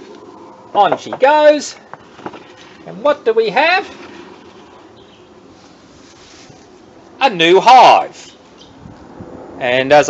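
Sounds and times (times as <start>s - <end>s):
aircraft droning overhead: 0.0s - 3.3s, 8.4s - 10.0s.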